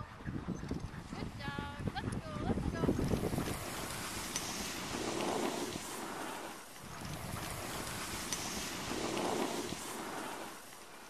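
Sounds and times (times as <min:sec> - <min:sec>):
wind rumbling on microphone: 0:00.0 - 0:11.0.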